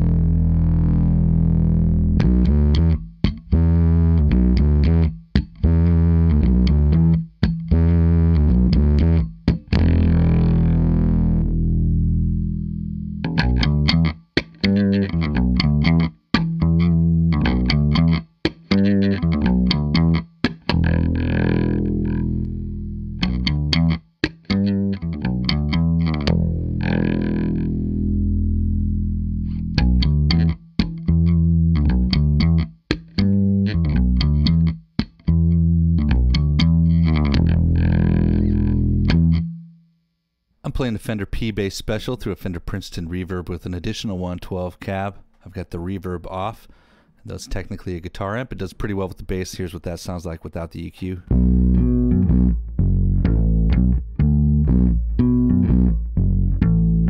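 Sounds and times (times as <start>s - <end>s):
electric bass riff: 0.0s - 39.8s, 51.2s - 57.0s.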